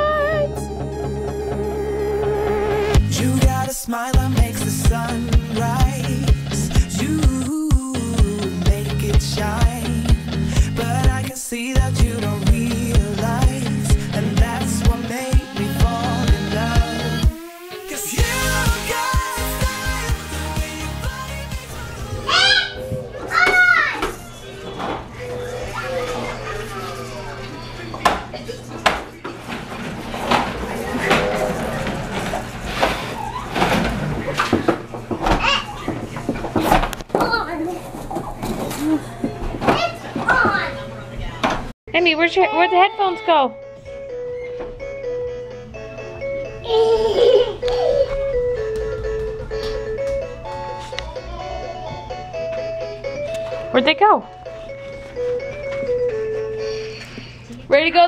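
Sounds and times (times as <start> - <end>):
toddler squealing: 22.2 - 24.0.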